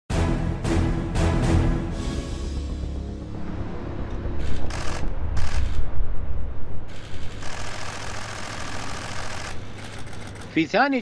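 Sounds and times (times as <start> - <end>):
traffic rumble: 2.8 - 11.0.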